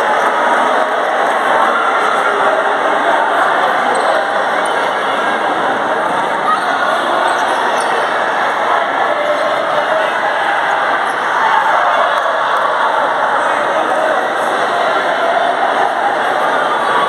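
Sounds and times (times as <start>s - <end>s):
reverberant din of voices: 0.0s - 17.0s.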